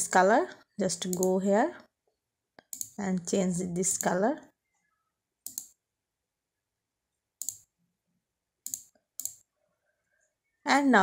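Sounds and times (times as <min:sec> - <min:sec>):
computer mouse clicks: 0:01.0 - 0:01.3, 0:02.6 - 0:03.0, 0:05.4 - 0:05.8, 0:07.4 - 0:07.8, 0:08.6 - 0:09.5.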